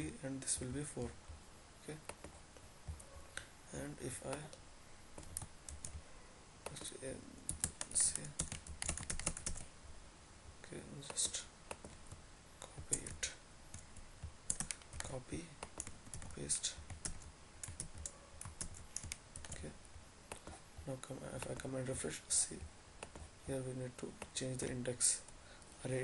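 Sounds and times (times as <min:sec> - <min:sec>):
computer keyboard clicking: 0:07.5 - 0:09.6, 0:14.5 - 0:16.3, 0:16.9 - 0:19.6.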